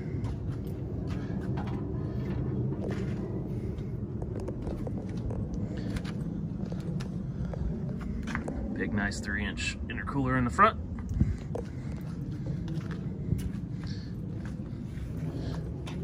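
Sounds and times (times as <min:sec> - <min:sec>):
wind rumble on microphone: 0:00.0 - 0:16.0
footsteps: 0:10.9 - 0:16.0.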